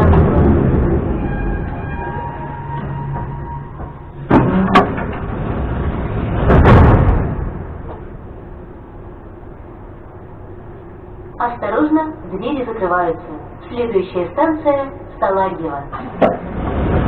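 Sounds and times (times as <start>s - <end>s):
sliding train doors opening: 0.0s - 8.2s, 16.0s - 17.0s
train low hum: 0.0s - 17.0s
sharp metallic clunks: 3.1s - 5.4s.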